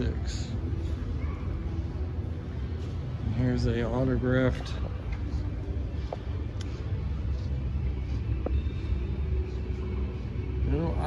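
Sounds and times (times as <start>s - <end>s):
low indoor rumble: 0.0s - 11.0s.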